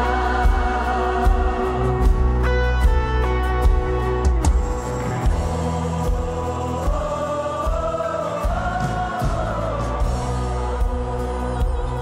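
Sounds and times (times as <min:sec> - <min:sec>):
church choir singing: 0:00.0 - 0:02.6, 0:03.6 - 0:12.0
gospel instrumental with low beat: 0:00.0 - 0:12.0.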